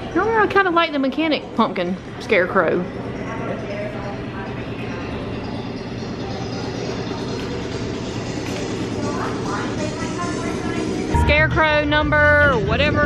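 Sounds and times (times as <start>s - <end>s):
faint voices: 0.0s - 13.0s
low shop rumble: 0.0s - 13.0s.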